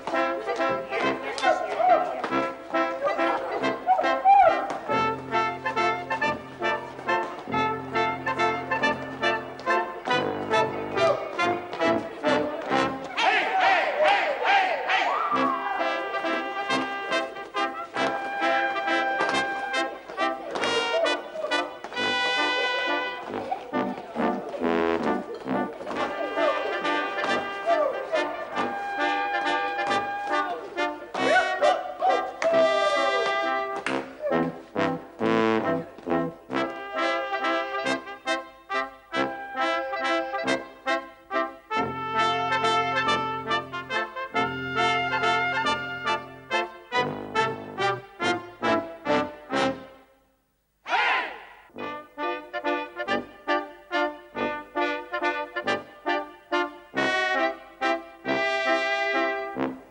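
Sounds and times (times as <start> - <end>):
brass band playing dance music: 0.0 - 59.9.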